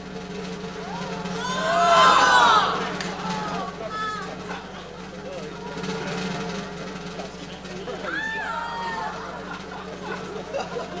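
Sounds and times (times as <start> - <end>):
studio audience murmuring: 0.9 - 11.0.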